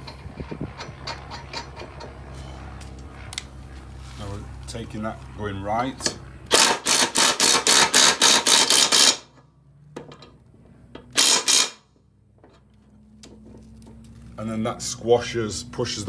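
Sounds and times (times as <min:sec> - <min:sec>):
impact driver hammering: 0:06.0 - 0:09.4, 0:11.0 - 0:11.9.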